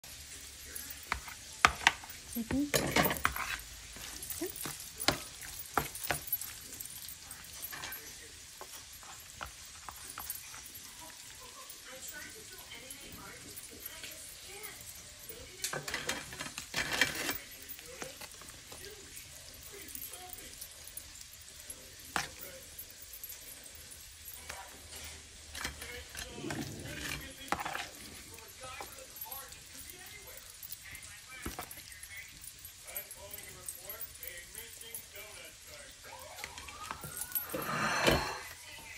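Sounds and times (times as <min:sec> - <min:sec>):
spoon spreading on crisp tostada: 0:00.1 - 0:11.8, 0:15.6 - 0:30.2
metal spoon scraping a bowl: 0:01.0 - 0:06.3, 0:15.6 - 0:17.6, 0:24.9 - 0:28.3, 0:37.5 - 0:38.6.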